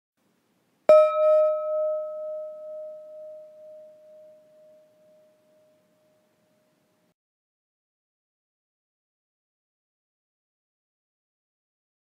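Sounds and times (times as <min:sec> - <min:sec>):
meditation gong ringing: 0:00.9 - 0:06.2.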